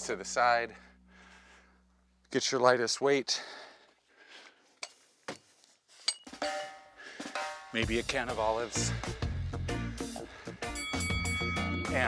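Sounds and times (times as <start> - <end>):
metal dumbbells clinking: 6.1 - 6.9
held musical tones: 10.6 - 12.0.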